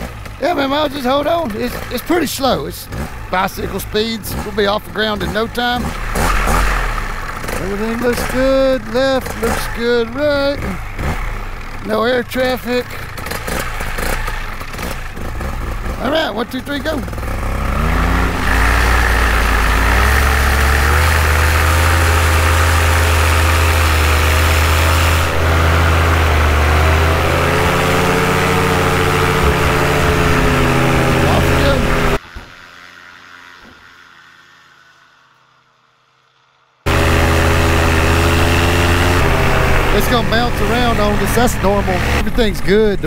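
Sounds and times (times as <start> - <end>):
paramotor engine and propeller: 0.0 - 43.0.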